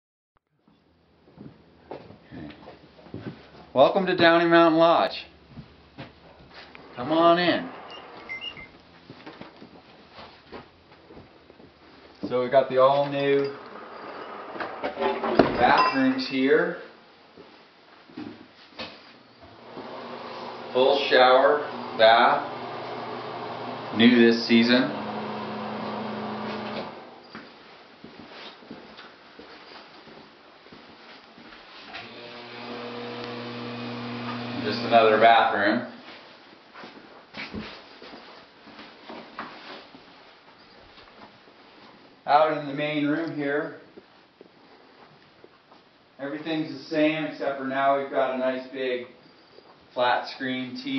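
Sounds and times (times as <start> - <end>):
footsteps on wooden boards: 1.3 - 4.4
electrical hum: 5.2 - 9.5, 19.3 - 27.4, 31.9 - 35.5.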